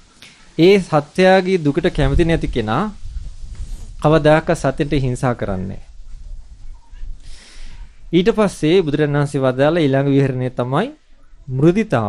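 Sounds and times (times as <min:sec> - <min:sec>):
soft breath: 0:06.0 - 0:08.2.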